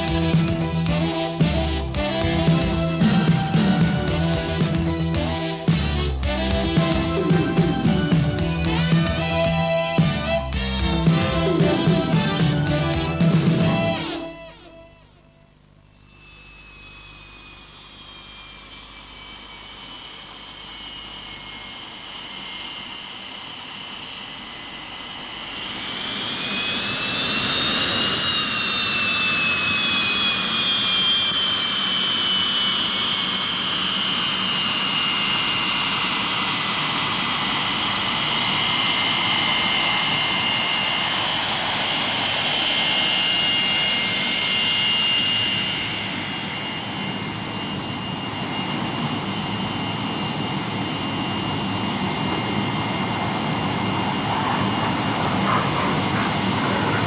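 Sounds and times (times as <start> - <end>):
jet engine whine and roar: 0.0 - 15.2, 16.1 - 57.0.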